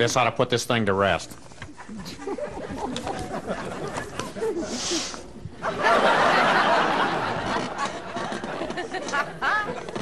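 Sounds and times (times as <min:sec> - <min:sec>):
laughter: 0:01.8 - 0:10.0
short hiss: 0:04.7 - 0:05.3.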